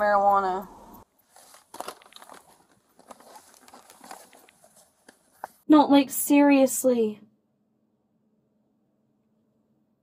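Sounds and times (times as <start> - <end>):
papers and bags rustling: 1.2 - 5.6
small clicks and scrapes: 1.2 - 5.6.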